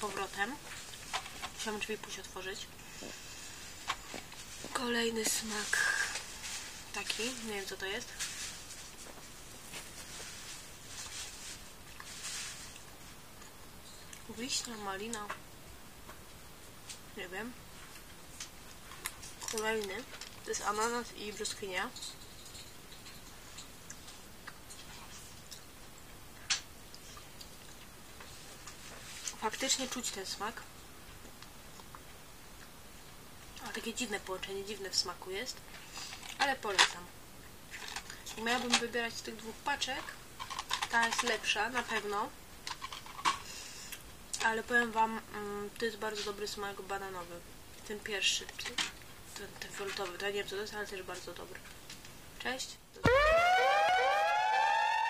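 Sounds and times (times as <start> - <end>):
person talking: 0.0 - 0.6, 4.7 - 6.2, 6.9 - 8.2, 14.3 - 15.4, 17.2 - 17.6, 19.5 - 22.0
rising electronic tones: 53.0 - 55.0.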